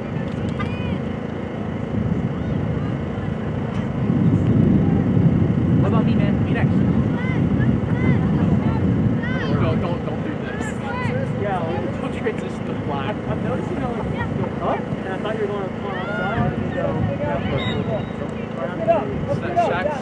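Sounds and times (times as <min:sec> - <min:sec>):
distant indistinct voices: 0:00.0 - 0:20.0
low rumble on microphone: 0:00.0 - 0:20.0.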